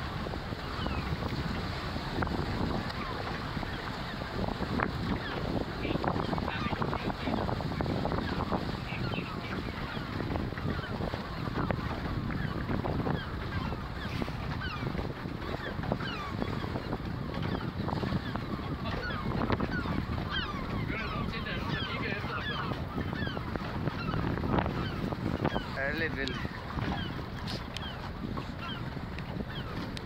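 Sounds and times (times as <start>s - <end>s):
boat noise: 0.0s - 30.0s
wind rumble: 0.0s - 30.0s.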